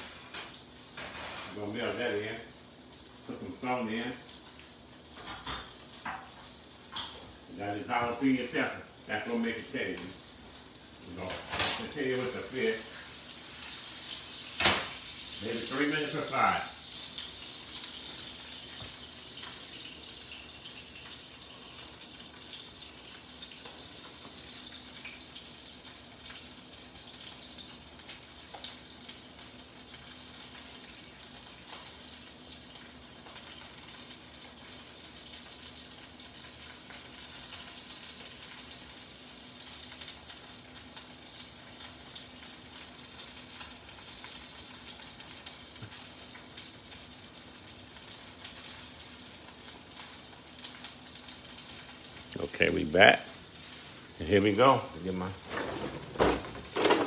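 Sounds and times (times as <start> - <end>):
fish sizzling in frying pan: 0.0 - 57.0.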